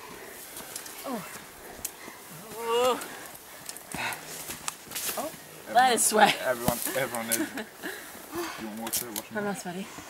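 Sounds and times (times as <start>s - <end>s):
footsteps on dirt trail: 0.3s - 7.2s.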